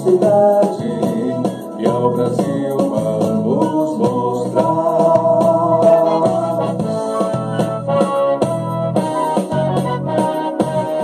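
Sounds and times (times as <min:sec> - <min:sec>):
anthem on electronic keyboard: 0:00.0 - 0:11.0.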